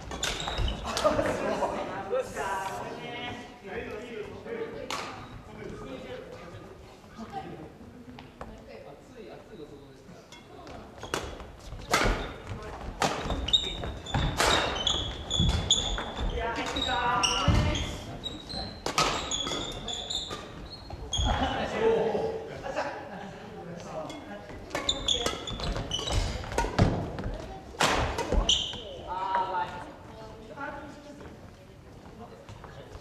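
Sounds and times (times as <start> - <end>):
court shoes squeaking: 0.0 - 1.4, 4.9 - 5.8, 9.4 - 21.6, 24.0 - 30.3
racket striking shuttlecock: 11.1 - 12.4, 14.2 - 16.8, 18.8 - 20.6, 24.7 - 28.8.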